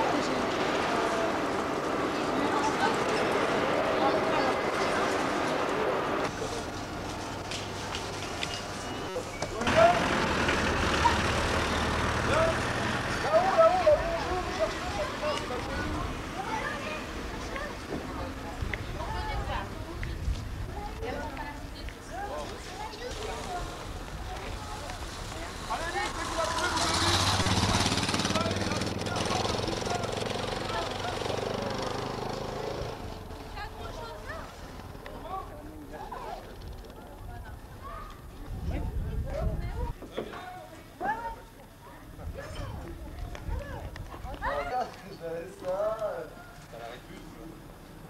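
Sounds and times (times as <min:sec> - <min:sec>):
voices: 0:00.0 - 0:48.0.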